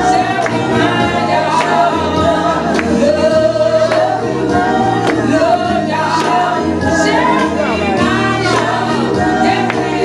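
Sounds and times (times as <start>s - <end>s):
congregation singing gospel song: 0.0s - 10.0s
hand claps: 0.4s - 0.8s, 1.6s - 1.9s, 2.7s - 3.0s, 3.9s - 4.2s, 5.0s - 5.3s, 6.1s - 6.6s, 8.4s - 8.8s.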